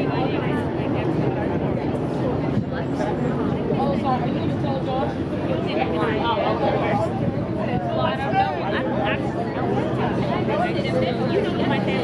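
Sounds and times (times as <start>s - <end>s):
indistinct chatter: 0.0s - 12.0s
steady low rumble: 0.0s - 12.0s.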